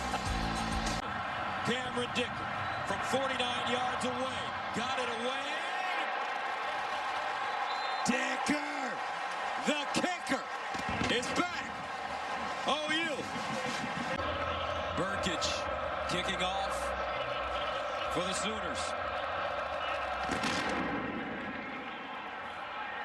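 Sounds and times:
stadium crowd cheering: 0.0s - 23.0s.

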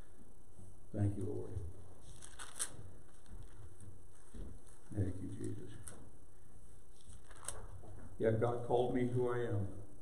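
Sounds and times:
faint paper rustle: 0.6s - 8.4s
pages turning: 2.0s - 6.1s, 6.9s - 8.2s.

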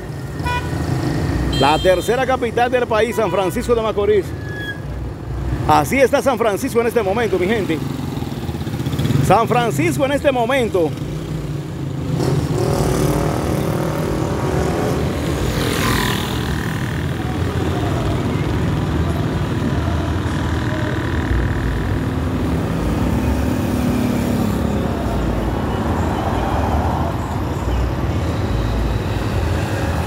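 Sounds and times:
vehicle engine and road noise: 0.0s - 30.0s.

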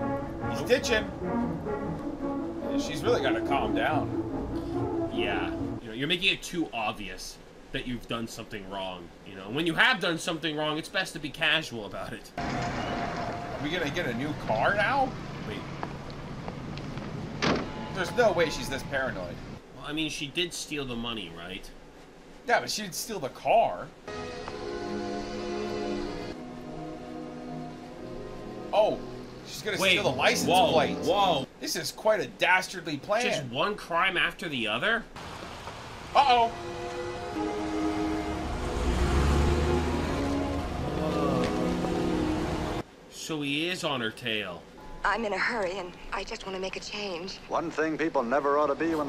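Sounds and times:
steady high tone: 0.0s - 5.8s, 17.7s - 19.3s, 24.1s - 31.5s, 36.2s - 42.8s
tense string orchestra music: 0.0s - 5.8s, 24.1s - 31.5s, 36.2s - 42.8s
car door shutting: 17.4s - 17.9s
car engine rumble: 35.2s - 42.8s.

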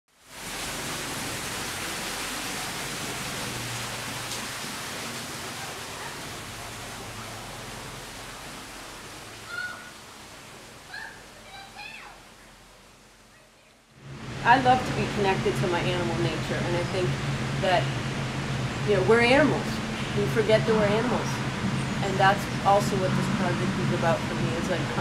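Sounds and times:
waterfall rushing: 0.1s - 25.0s
faint high calls or voices: 9.4s - 10.0s, 10.8s - 13.9s.

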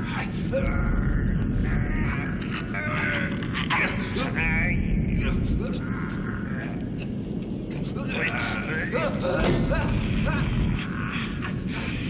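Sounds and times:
gas fire flames roaring: 0.0s - 12.0s.

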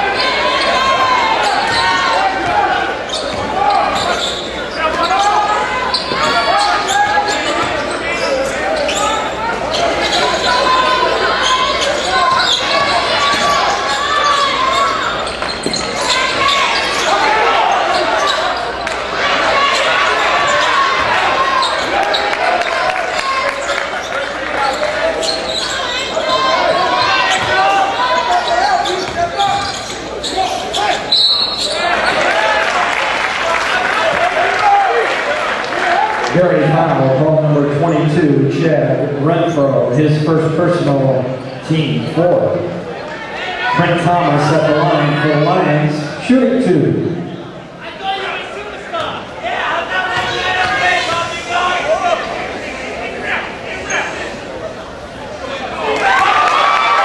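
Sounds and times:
spectators talking: 0.0s - 57.0s.

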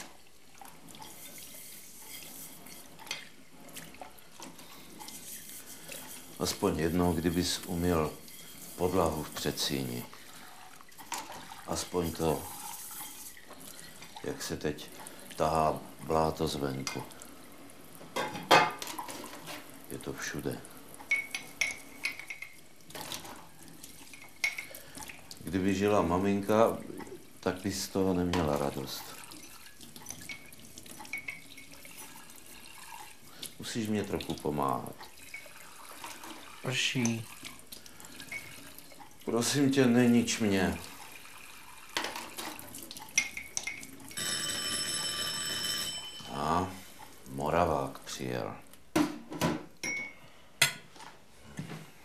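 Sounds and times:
dishes and cutlery clattering: 18.2s - 19.6s, 21.1s - 23.3s
electric doorbell ringing: 44.2s - 46.7s.

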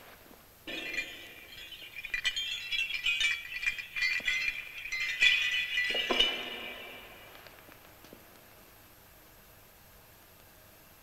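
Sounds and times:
metal bells jingling: 0.7s - 7.7s.

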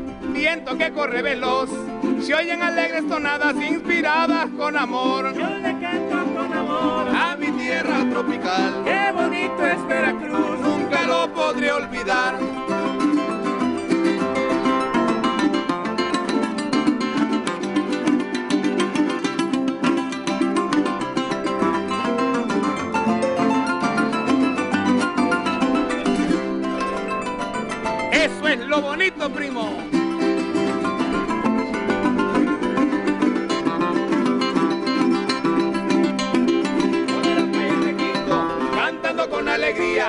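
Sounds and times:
fast rhythmic strumming: 0.0s - 40.0s
person singing: 0.2s - 13.1s, 36.6s - 40.0s
plucked harp notes: 3.0s - 40.0s.

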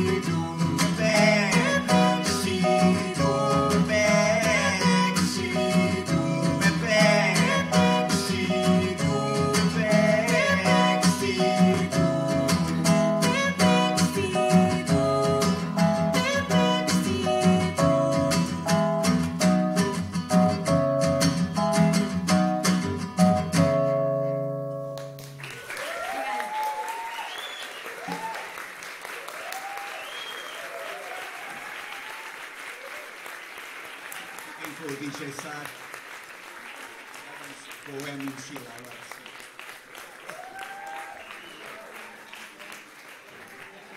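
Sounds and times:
guitar chord ringing: 6.0s - 25.2s
audience applause: 25.1s - 43.9s
audience cheering and shouting: 25.6s - 28.6s, 29.2s - 33.1s, 40.2s - 42.4s.

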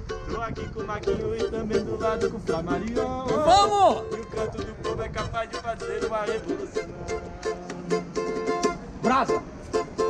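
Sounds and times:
ukulele strumming: 0.0s - 10.0s.

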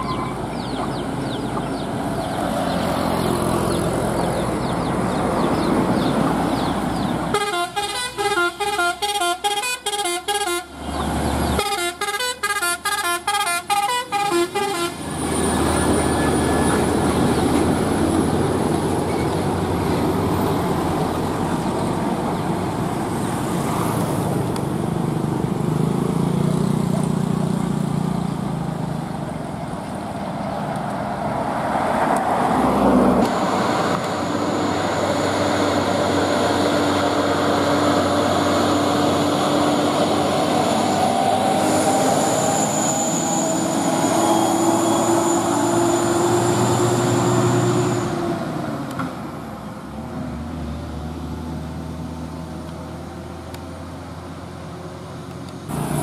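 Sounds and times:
trucks and traffic passing: 0.0s - 56.0s
musical vehicle horn: 7.3s - 10.8s, 11.6s - 15.0s.

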